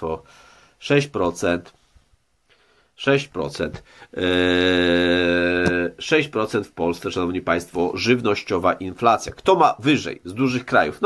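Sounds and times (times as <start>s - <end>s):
man holding a hesitation vowel: 4.1s - 6.0s.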